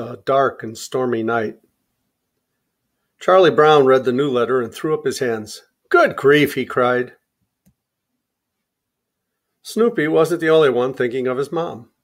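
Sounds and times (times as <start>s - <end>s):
person speaking: 0.0s - 1.8s, 3.2s - 7.9s, 9.6s - 12.0s.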